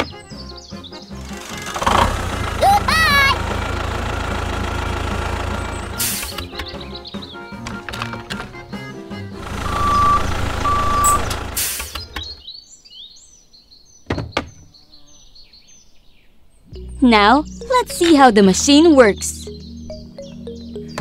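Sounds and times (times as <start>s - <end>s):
background music: 0.0s - 10.6s, 16.7s - 21.0s
tractor engine rumble: 1.2s - 6.9s, 9.4s - 12.4s
short beeps: 9.7s - 11.3s.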